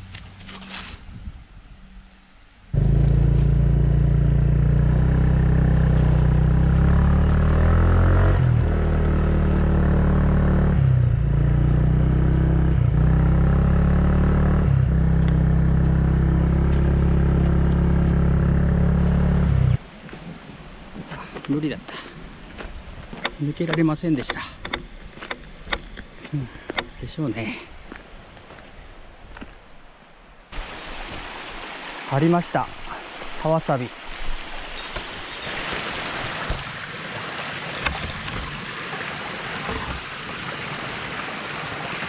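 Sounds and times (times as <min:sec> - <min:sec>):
motorcycle engine running: 0:02.8 - 0:19.8.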